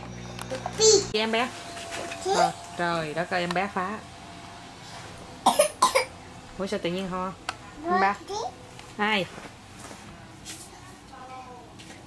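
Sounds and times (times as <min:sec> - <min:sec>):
person coughing: 0:05.5 - 0:06.1.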